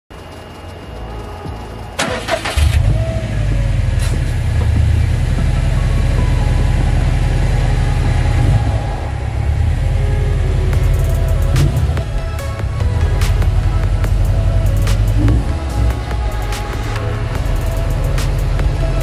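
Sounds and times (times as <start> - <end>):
car engine starting and idling: 0.1 - 19.0
music: 0.1 - 19.0.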